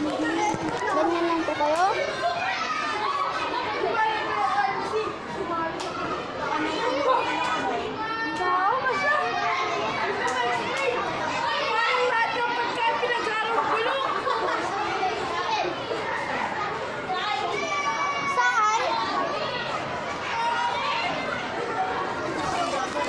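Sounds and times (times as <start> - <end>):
children chattering and calling out: 0.0 - 23.0.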